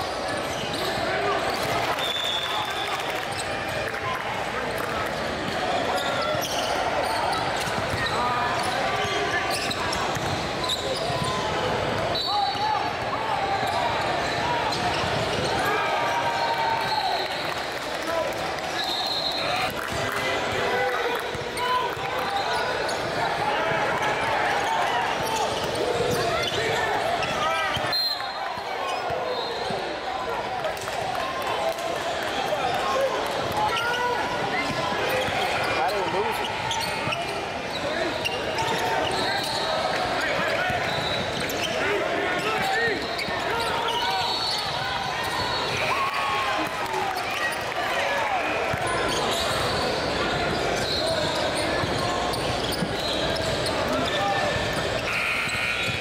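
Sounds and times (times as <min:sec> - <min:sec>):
sneakers squeaking on court: 0:00.0 - 0:02.4, 0:05.1 - 0:12.6, 0:13.5 - 0:17.0, 0:21.2 - 0:23.2, 0:25.1 - 0:29.9, 0:33.7 - 0:45.9, 0:48.6 - 0:56.0
voices chattering and calling out: 0:00.0 - 0:56.0.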